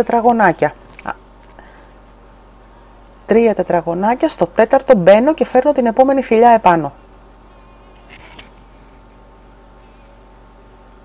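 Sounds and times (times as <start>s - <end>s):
faint wavering high whine: 0.0s - 11.0s.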